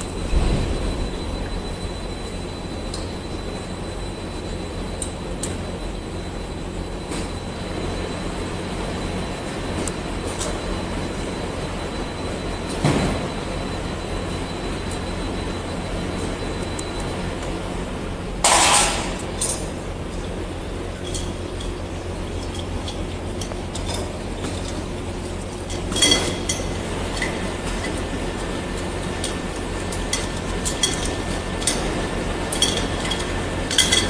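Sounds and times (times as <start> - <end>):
loud burst of noise: 0.0 - 2.8
machine hum with high whine: 0.0 - 34.0.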